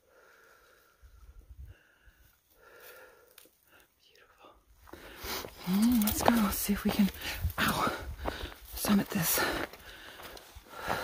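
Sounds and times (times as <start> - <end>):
heavy breathing: 0.0 - 4.0, 4.8 - 6.3, 7.0 - 11.0
woman speaking: 5.6 - 7.9, 8.8 - 9.6.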